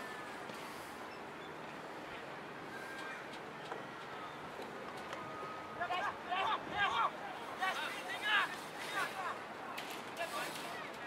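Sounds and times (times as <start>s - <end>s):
footballers shouting calls: 5.4s - 9.4s.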